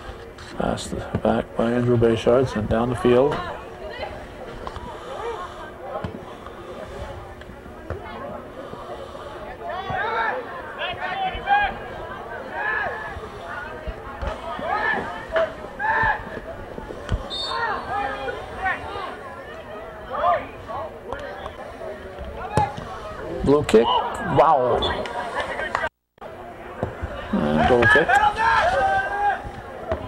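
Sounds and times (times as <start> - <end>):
voices shouting and calling out: 3.0 - 30.0.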